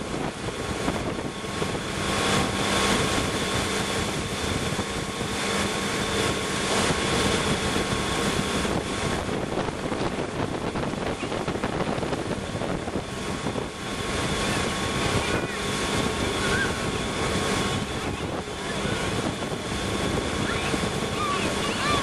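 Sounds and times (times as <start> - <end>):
churning wake rushing: 0.0 - 22.0
motorboat running at speed: 0.0 - 22.0
wind buffeting microphone: 0.0 - 22.0.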